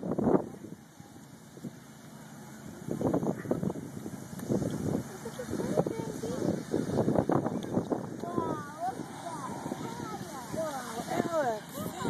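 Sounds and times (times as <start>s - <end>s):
low outdoor rumble: 0.0s - 12.0s
people's voices: 0.3s - 12.0s.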